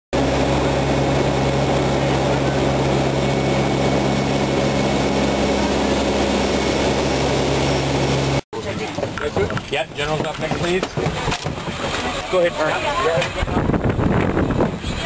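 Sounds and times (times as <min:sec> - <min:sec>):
aircraft engine drone inside cabin: 0:00.2 - 0:08.4.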